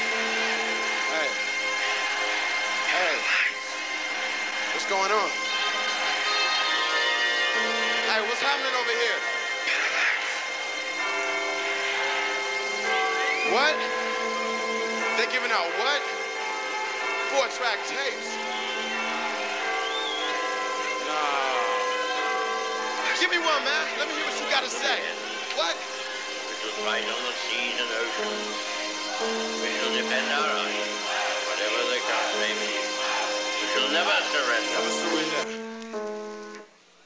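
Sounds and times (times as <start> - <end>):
drone of held tones: 0.0 - 2.5, 7.6 - 8.1, 27.8 - 31.3, 34.8 - 36.7
man speaking: 29.6 - 30.7
buzzing hum with high whining tones: 35.4 - 36.7.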